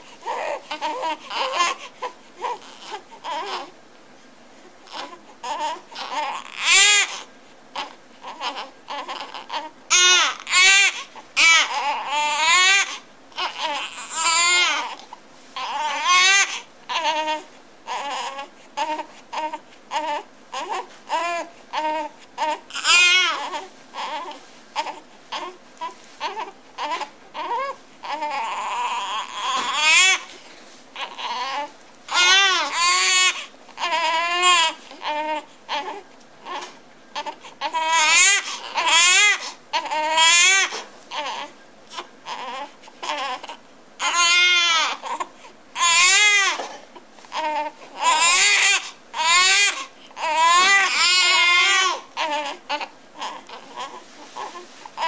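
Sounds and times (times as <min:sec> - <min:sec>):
newborn babies crying: 0:00.2 - 0:03.7, 0:04.9 - 0:30.4, 0:31.0 - 0:55.0.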